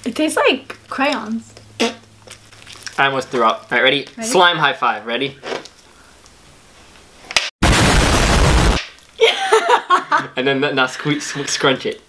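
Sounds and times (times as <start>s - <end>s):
explosion sound effect: 7.6s - 8.8s.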